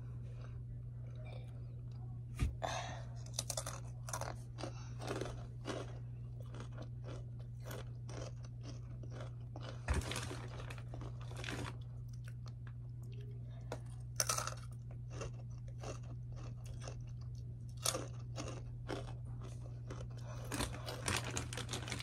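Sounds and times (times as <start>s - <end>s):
crunching and chewing chips: 3.2s - 22.0s.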